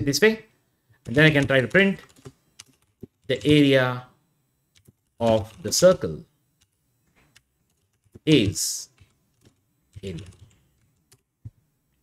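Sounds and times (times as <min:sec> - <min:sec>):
faint keystrokes on keyboard: 0:01.0 - 0:03.6, 0:04.7 - 0:12.0.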